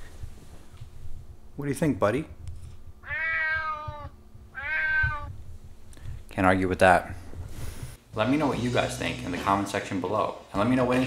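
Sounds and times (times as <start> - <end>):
cat meowing: 3.0 - 5.4.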